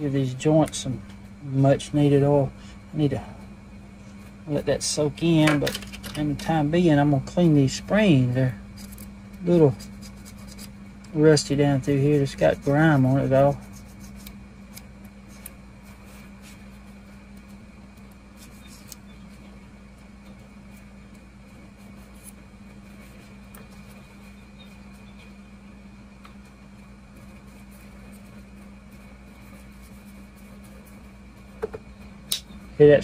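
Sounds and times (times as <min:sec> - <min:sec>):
faint high whine: 0:00.0 - 0:33.0
low hum: 0:00.0 - 0:33.0.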